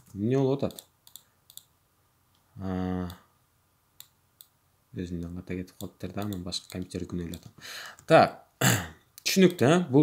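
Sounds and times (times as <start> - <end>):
sharp computer clicks: 0.0 - 1.7, 5.2 - 8.1.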